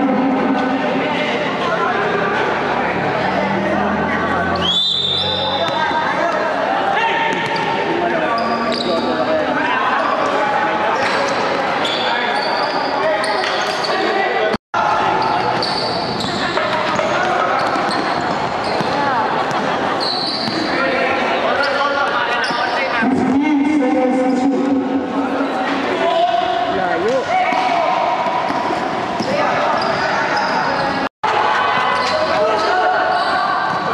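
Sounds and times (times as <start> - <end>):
basketball bouncing on court: 16.1 - 19.7.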